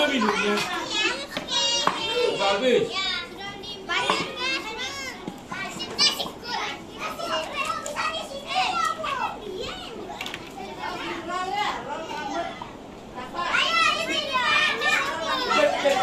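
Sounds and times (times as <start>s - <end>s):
children chattering and calling out: 0.0s - 16.0s.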